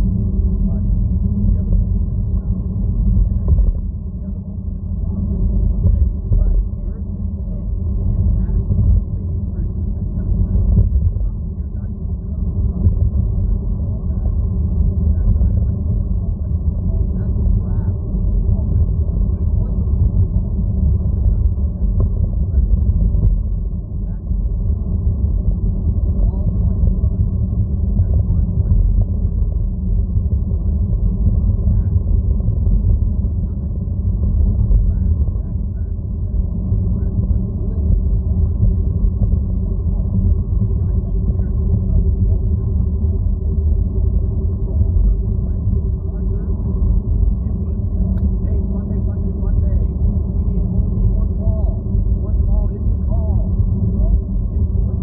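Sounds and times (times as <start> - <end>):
loud low rumble: 0.0 - 55.0.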